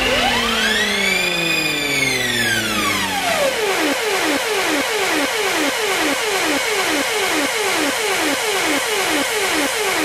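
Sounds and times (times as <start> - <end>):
buzzy synth sweeps: 0.0 - 10.0.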